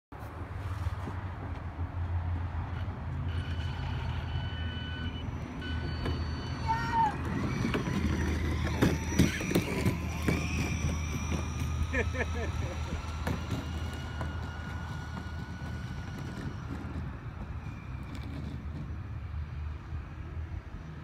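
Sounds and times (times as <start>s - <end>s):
electric motor whine: 3.3s - 18.9s
wagon wheels rattling on concrete: 5.7s - 19.0s
child laughing: 11.8s - 13.1s.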